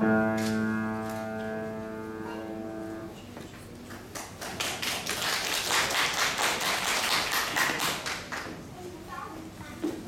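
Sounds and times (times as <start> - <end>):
audience clapping: 4.0 - 8.5.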